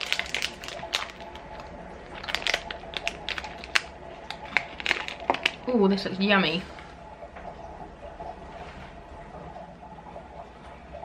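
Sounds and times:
plastic wrapper crinkling: 0.0s - 5.7s.

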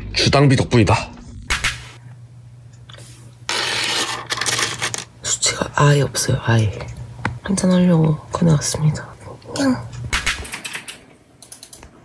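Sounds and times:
low steady hum: 0.0s - 10.2s.

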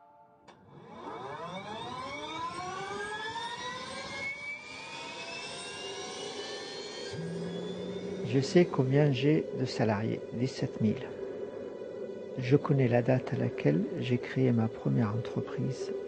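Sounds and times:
jet engine whine rising: 0.7s - 16.0s
low steady hum: 7.2s - 16.0s.

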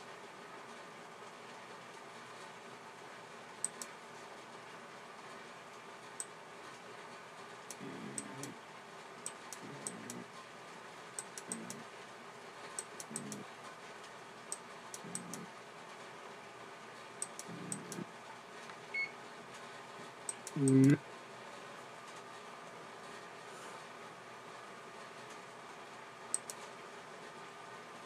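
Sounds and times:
soft low murmur: 0.1s - 16.1s, 16.8s - 28.0s
faint sharp clicks: 3.6s - 3.9s, 26.3s - 26.6s.

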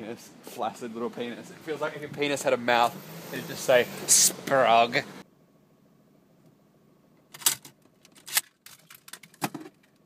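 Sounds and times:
sharp clicks and rustles: 7.2s - 10.0s.

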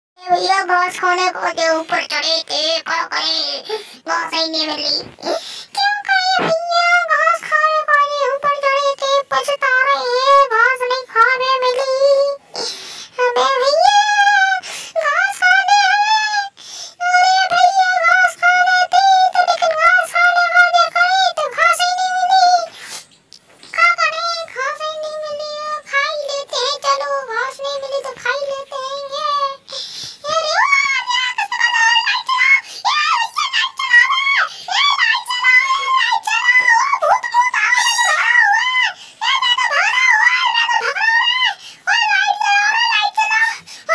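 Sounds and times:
high-pitched singing voice: 0.2s - 43.9s.

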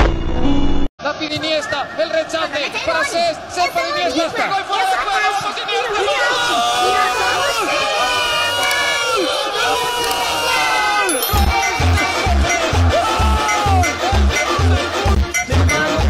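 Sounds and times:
stadium crowd cheering: 1.2s - 14.9s.

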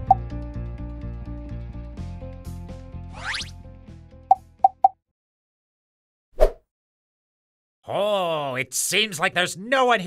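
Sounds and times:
background music: 0.0s - 4.9s.

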